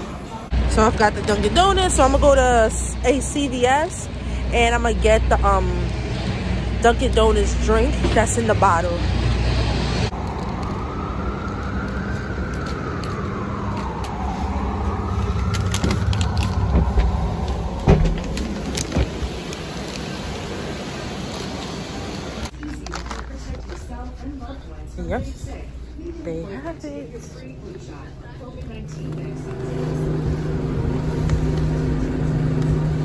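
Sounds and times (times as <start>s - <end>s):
street traffic rumble: 0.0s - 33.0s
siren wailing: 10.0s - 18.9s, 28.8s - 33.0s.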